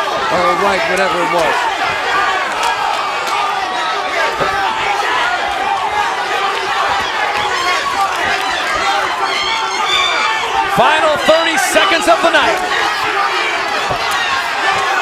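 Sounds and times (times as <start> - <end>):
crowd shouting and cheering: 0.0 - 15.0.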